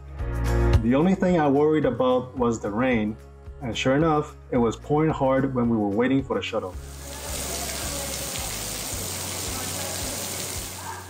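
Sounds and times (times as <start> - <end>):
background music: 0.0 - 11.0
heavy rain on pavement: 6.9 - 11.0.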